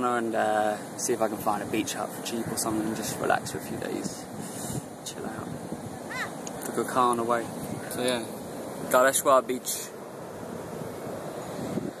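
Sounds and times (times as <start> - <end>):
surf washing onto beach: 0.0 - 12.0
wind on microphone: 0.0 - 12.0.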